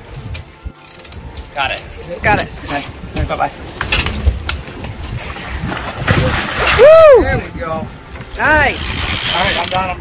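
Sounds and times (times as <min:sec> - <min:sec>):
fish splashing into water: 0:05.3 - 0:07.2
person whooping: 0:06.6 - 0:07.2.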